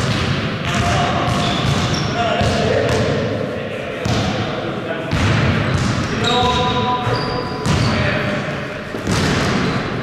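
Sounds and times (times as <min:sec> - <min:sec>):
basketball dribbling thuds: 0:00.0 - 0:03.2, 0:05.1 - 0:08.0, 0:08.9 - 0:09.8.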